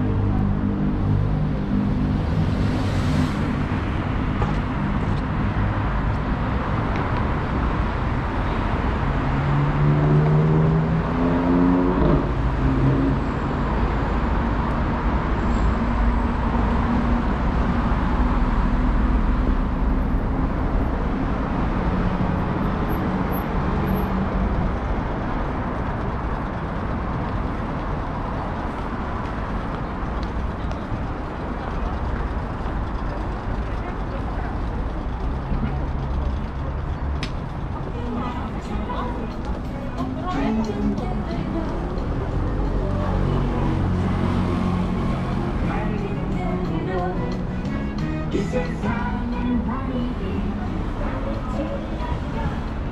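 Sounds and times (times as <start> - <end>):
road traffic rumble: 0.0 - 52.9.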